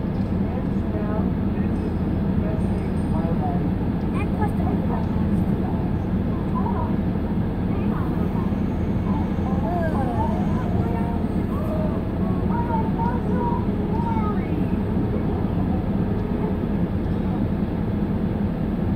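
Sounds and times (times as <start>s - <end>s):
faint voices talking: 0.0s - 18.7s.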